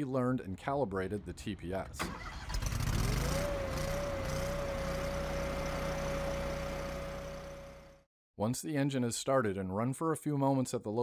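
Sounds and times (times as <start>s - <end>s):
engine running at high speed: 2.6s - 8.0s.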